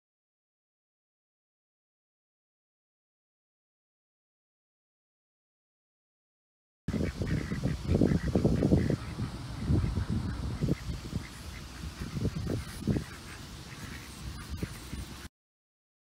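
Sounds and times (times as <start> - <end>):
ducks quacking: 6.9 - 15.3
low rumbling noise: 6.9 - 15.3.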